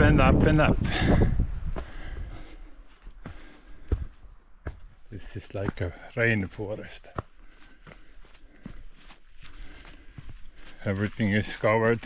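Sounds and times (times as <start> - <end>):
footsteps on rocky dirt trail: 0.6 - 12.0.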